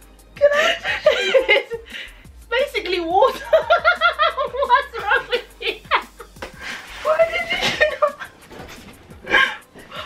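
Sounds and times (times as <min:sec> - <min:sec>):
women laughing hard: 0:00.4 - 0:01.9, 0:03.4 - 0:08.6, 0:09.2 - 0:09.8.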